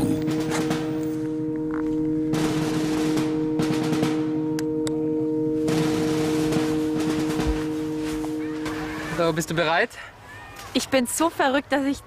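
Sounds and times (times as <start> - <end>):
droning music with ringing tones: 0.0 - 9.6.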